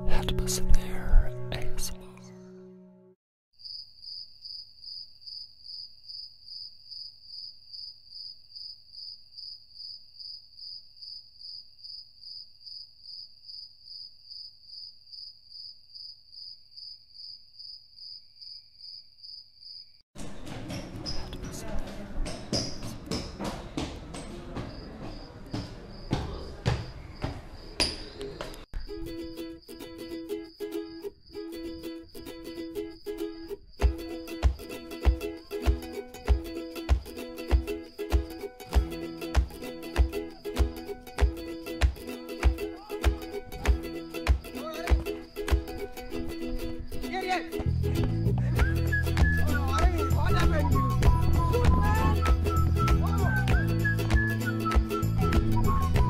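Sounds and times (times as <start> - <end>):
plucked-string music: 0.0 - 3.2, 28.8 - 56.0.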